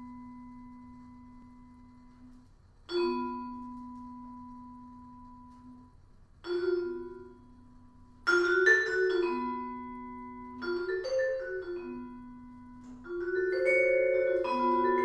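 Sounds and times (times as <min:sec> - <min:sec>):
vibraphone notes: 0:02.9 - 0:15.0.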